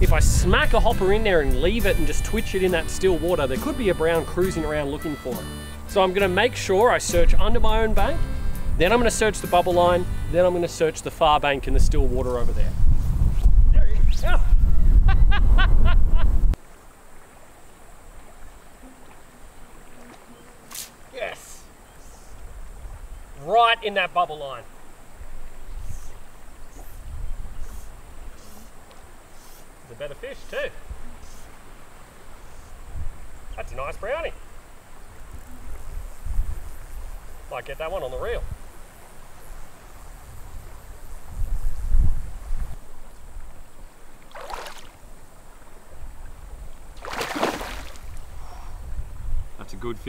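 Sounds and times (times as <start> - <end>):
wind rumble on microphone: 0.0 - 1.9, 11.5 - 16.6, 25.2 - 28.3, 32.8 - 33.5, 35.1 - 37.5, 38.2 - 43.8, 48.0 - 50.0
faint insect chirp: 10.0 - 50.0
fish splashing at water surface: 44.3 - 45.0, 47.0 - 48.2.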